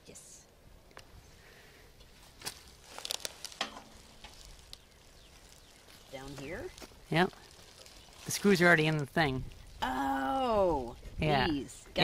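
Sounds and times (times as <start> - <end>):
rustling bubble wrap: 2.2 - 9.8.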